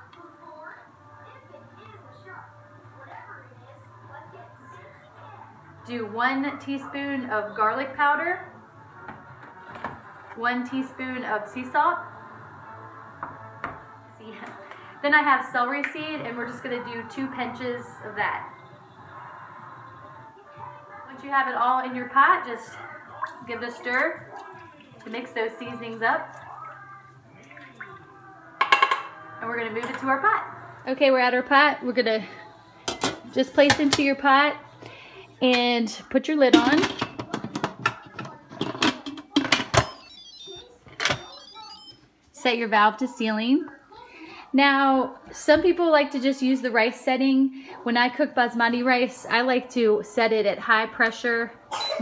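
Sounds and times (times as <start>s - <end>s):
kitchen utensils clicking: 28.6s - 30.4s, 32.8s - 34.3s, 35.4s - 40.1s.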